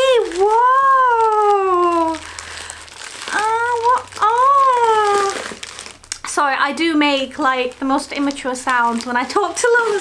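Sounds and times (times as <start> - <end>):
woman cooing baby-talk: 0.0 - 2.2, 3.3 - 5.4.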